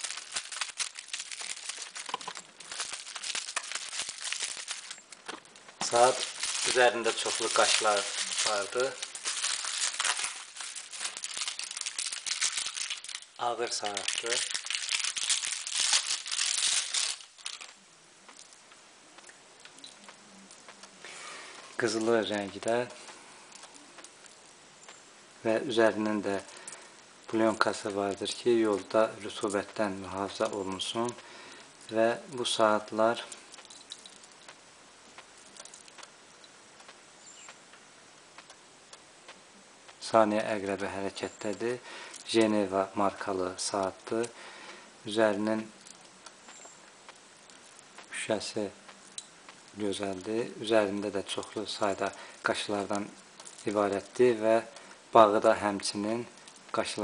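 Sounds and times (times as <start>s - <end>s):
bubble wrap and plastic crinkling: 0.0s - 36.2s, 39.8s - 44.4s, 45.0s - 57.0s
low steady hiss: 0.0s - 57.0s.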